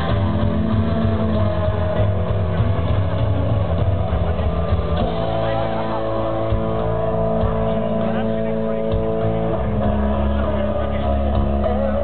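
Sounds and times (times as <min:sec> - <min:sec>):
bass guitar: 0:00.0 - 0:12.0
distorted electric guitar: 0:00.0 - 0:12.0
drums: 0:00.0 - 0:12.0.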